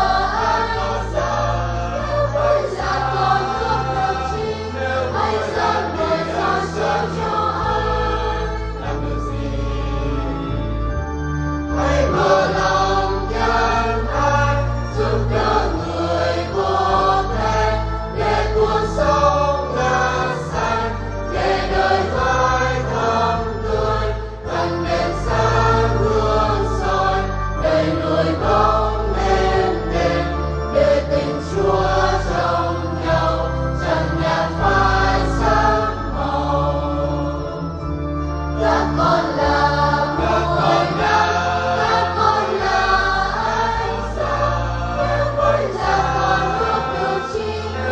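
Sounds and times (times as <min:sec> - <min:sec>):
choir singing a hymn: 0:00.0 - 0:47.9
instrumental accompaniment: 0:00.0 - 0:47.9.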